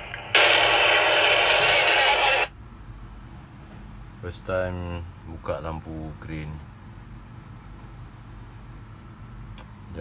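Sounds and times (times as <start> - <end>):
walkie-talkie static burst: 0.0 - 2.5.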